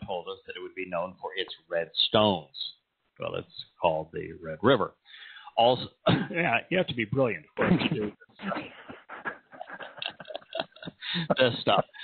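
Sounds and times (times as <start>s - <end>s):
man laughing breathily: 8.4s - 12.0s.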